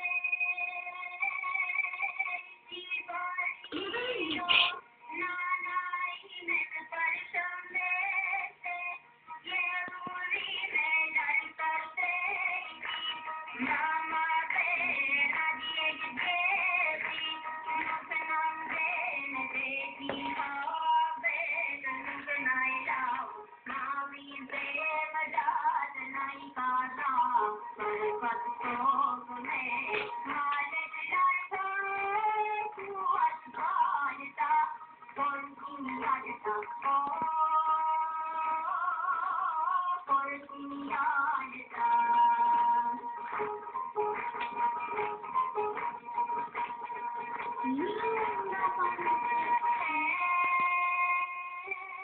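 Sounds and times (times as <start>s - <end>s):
music: 0.0s - 52.0s.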